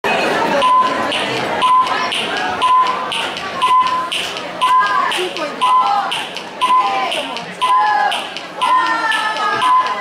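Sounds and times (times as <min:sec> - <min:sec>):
countdown ticks and beeps: 0:00.6 - 0:10.0.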